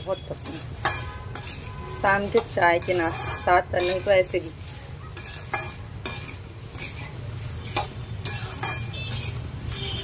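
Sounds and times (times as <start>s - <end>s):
metal spatula scraping pan: 0.0s - 10.0s
dry rustle of puffed rice: 1.4s - 10.0s.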